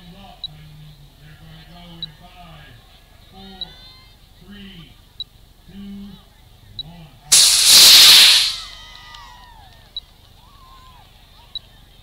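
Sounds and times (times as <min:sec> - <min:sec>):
rocket motor rushing hiss: 0:07.3 - 0:08.8.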